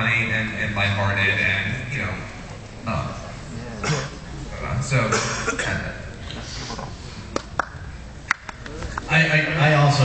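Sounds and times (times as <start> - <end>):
audience room noise: 0.0 - 10.0
person coughing: 3.8 - 4.2, 5.1 - 5.8.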